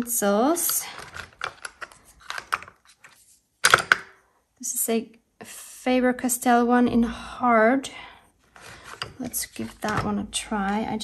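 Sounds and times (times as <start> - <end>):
pencils clicking and rattling: 0.5 - 4.2.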